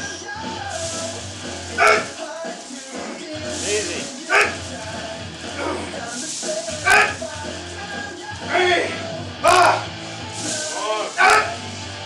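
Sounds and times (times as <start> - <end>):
music playing: 0.0 - 12.0
lifter grunting: 1.7 - 2.2, 5.5 - 6.0, 6.8 - 7.2, 8.5 - 9.9.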